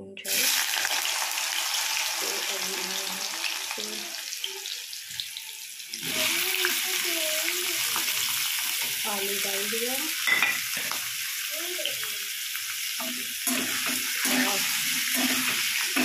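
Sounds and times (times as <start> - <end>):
hot oil sizzling in a pan: 0.2 - 16.0.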